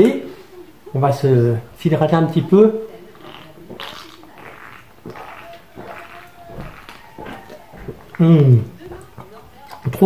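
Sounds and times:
man gulping a drink: 0:03.0 - 0:09.9.

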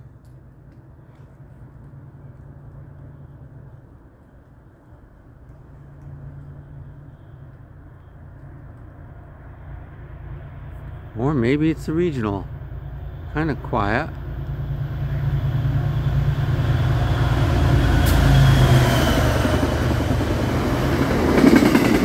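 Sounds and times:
train rumbling in distance: 0:00.0 - 0:22.0.

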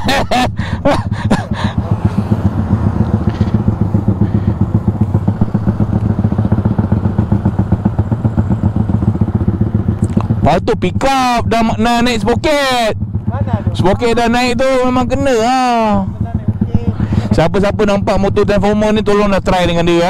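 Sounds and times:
motorcycle engine idling: 0:00.0 - 0:20.0.

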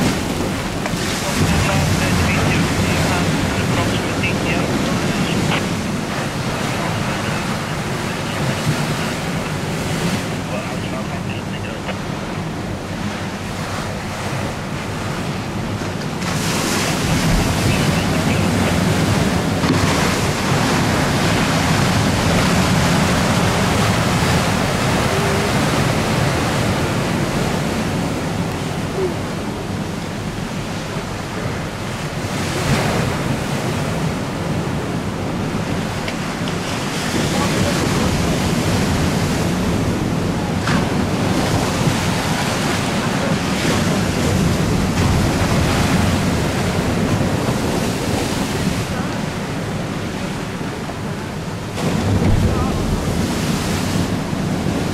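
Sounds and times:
choppy river water: 0:00.0 - 0:54.9
wind buffeting microphone: 0:11.6 - 0:54.9.

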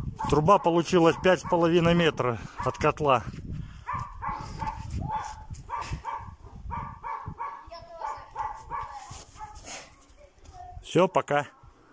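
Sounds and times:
dog barking: 0:00.2 - 0:01.9, 0:02.6 - 0:02.8, 0:03.8 - 0:09.6.

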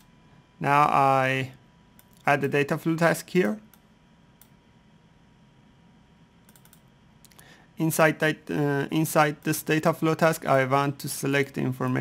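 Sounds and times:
man speaking: 0:00.6 - 0:01.6, 0:02.2 - 0:03.7, 0:07.8 - 0:12.0
computer mouse clicks: 0:02.0 - 0:02.3, 0:03.6 - 0:04.6, 0:06.4 - 0:07.4.

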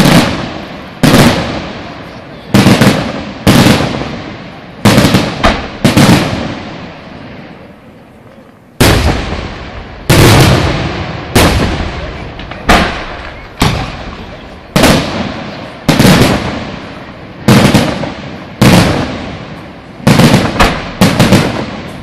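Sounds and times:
firework shells bursting: 0:20.0 - 0:22.0.

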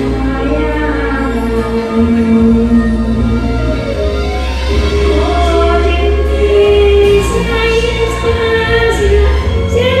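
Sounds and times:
woman singing pop song: 0:00.0 - 0:03.6, 0:04.8 - 0:10.0
instrumental backing music: 0:00.0 - 0:10.0.

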